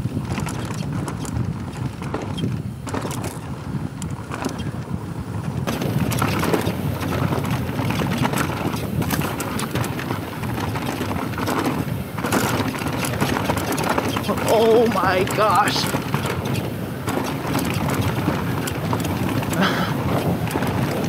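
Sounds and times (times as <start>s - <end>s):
bike tyres crunching over gravel: 0.0s - 21.0s
wind buffeting microphone: 0.0s - 21.0s.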